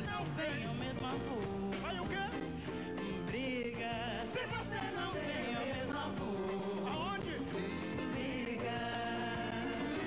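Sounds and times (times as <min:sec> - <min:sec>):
band accompaniment: 0:00.0 - 0:10.0
duet singing: 0:00.0 - 0:10.0.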